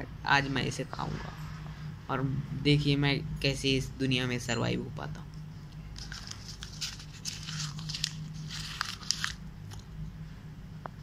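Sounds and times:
person chewing paper: 0:06.0 - 0:09.9.

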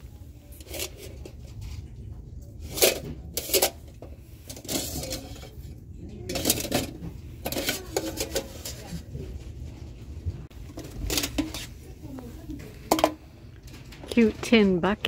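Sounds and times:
tin pails clanking together: 0:02.6 - 0:09.0, 0:10.6 - 0:11.8, 0:12.8 - 0:13.2.

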